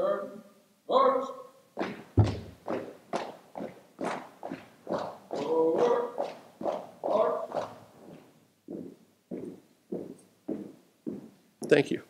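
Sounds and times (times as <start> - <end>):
marching footsteps: 1.8 - 11.4
person calling command: 7.0 - 7.5.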